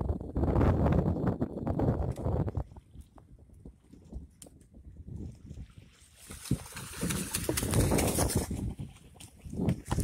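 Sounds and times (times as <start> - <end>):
water splashing and churning: 2.4 - 10.0.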